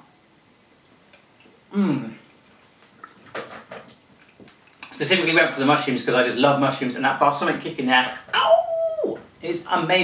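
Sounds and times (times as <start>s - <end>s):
man chewing food: 0.8s - 5.0s
soft mouth noises: 1.1s - 3.3s.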